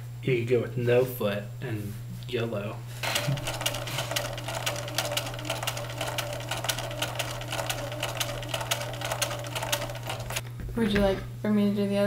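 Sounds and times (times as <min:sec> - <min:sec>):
sewing machine stitching: 0:03.0 - 0:10.4.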